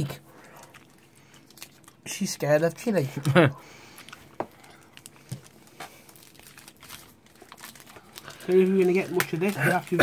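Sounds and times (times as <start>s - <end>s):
wrapper crinkling: 0.0s - 3.0s, 3.8s - 10.0s.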